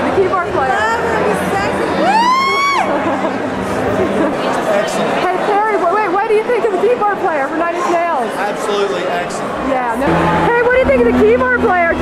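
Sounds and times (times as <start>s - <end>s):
room noise: 0.0s - 8.1s, 8.9s - 12.0s
low held tones: 10.0s - 12.0s.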